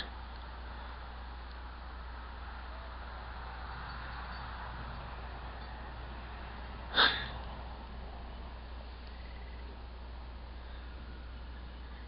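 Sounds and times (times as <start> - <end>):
constant low hum: 0.0 - 12.0.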